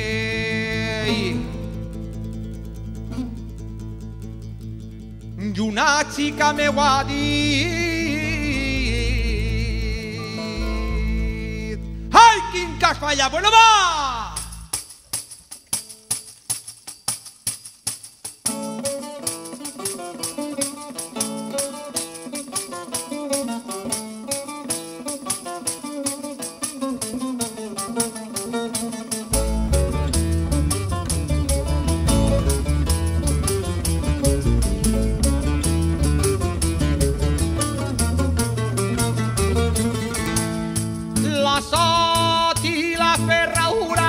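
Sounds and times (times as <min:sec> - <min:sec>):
double bass: 0:00.0 - 0:13.3, 0:29.3 - 0:42.4
plucked lutes and guitars: 0:00.0 - 0:44.0
tambourine beat: 0:13.8 - 0:44.0.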